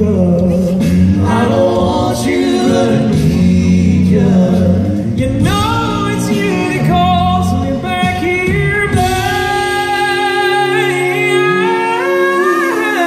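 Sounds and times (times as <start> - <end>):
a cappella group singing: 0.0 - 13.0.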